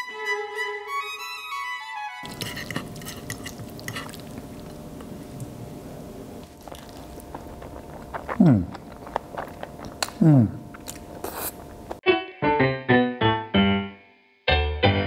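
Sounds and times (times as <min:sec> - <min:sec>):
violin music: 0:00.0 - 0:02.2
fork twirling spaghetti on plate: 0:02.2 - 0:04.6.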